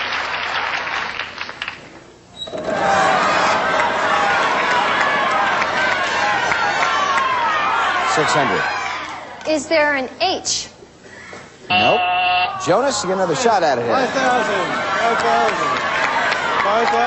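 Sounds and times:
audience applause: 0.0 - 1.9, 2.7 - 9.3, 13.2 - 17.0
audience shouting together: 2.7 - 9.4, 12.4 - 17.0.

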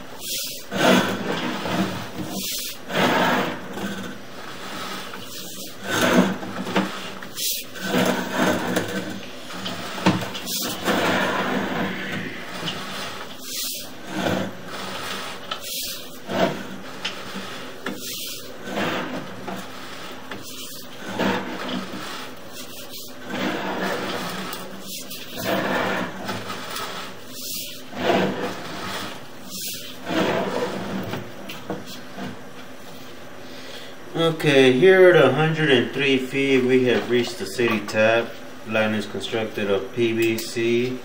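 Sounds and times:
cable scraping in drain pipe: 0.0 - 32.6.

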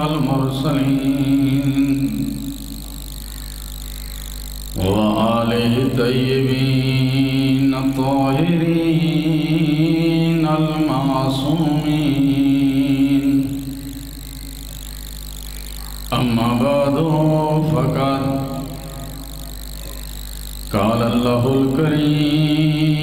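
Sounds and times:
man chanting over microphone: 0.0 - 2.6, 4.8 - 13.9, 16.1 - 19.2, 20.7 - 23.0
steady low hum: 0.0 - 23.0.

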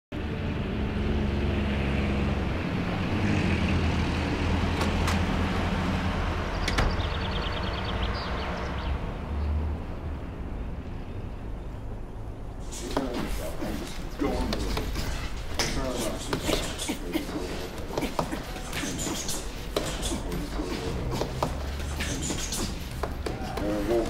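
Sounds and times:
traffic engine drone: 0.1 - 24.0.

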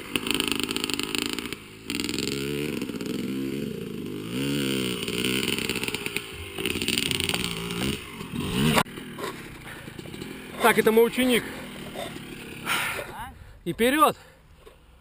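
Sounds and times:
dirt bike engines revving: 0.0 - 15.0.

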